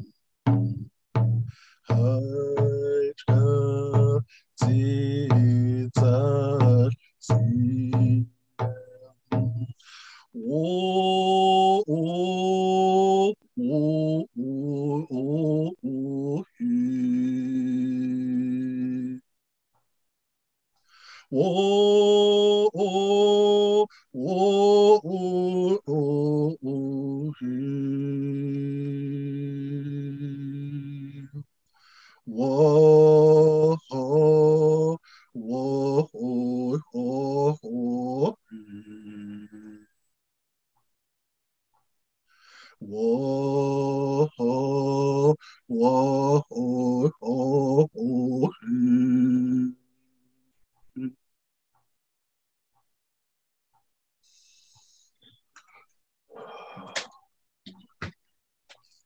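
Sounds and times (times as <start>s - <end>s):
man singing unaccompanied: 0.0s - 19.3s, 21.2s - 31.5s, 32.2s - 39.9s, 42.7s - 49.8s
breaths: 1.4s - 2.0s, 4.2s - 4.6s, 9.7s - 10.4s, 20.8s - 21.4s, 23.9s - 24.2s, 31.6s - 32.3s, 35.0s - 35.4s, 42.2s - 42.8s, 45.4s - 45.7s, 54.2s - 57.2s.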